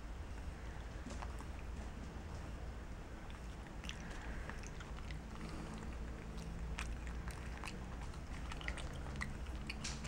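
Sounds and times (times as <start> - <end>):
monkey chewing: 3.2 - 10.0.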